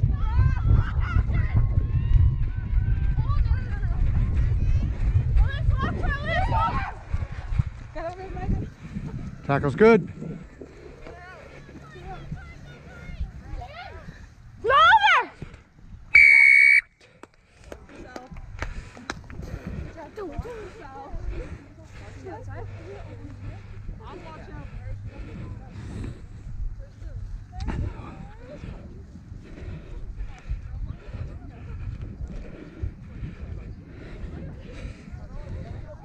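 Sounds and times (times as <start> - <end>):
referee's whistle blast: 16.2 - 16.9
scattered voices: 17.7 - 36.0.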